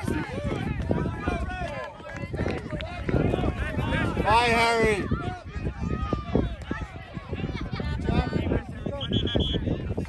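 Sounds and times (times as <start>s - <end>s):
voices calling out and talking: 0.0s - 10.0s.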